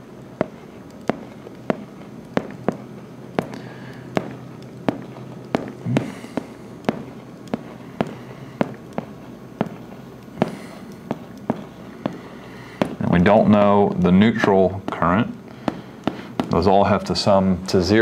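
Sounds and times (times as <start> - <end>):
faint low hum: 0.0 - 18.0
pen tapping on whiteboard: 0.4 - 12.2.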